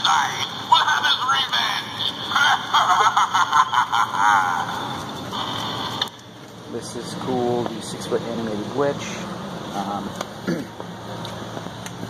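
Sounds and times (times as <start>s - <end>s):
tinny recorded laughing voice: 2.4s - 4.9s.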